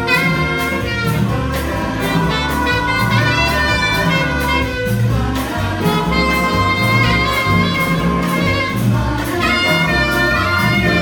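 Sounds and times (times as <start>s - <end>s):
bass and drums: 0.0s - 11.0s
choir singing chords: 0.0s - 11.0s
saxophone: 0.0s - 11.0s.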